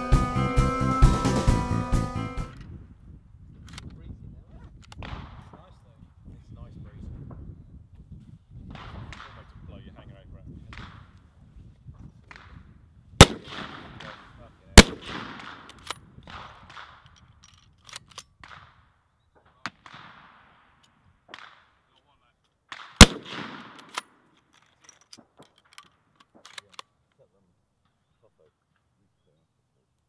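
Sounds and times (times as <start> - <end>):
gunshot echo: 13.2 - 17.0, 22.7 - 24.1
rifle shots: 13.2 - 17.1, 19.6 - 21.8, 22.7 - 24.3.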